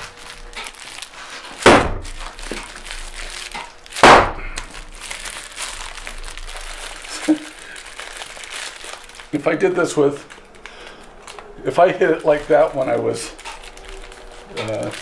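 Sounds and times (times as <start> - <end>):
plastic wrapping crinkling: 0.0 - 15.0.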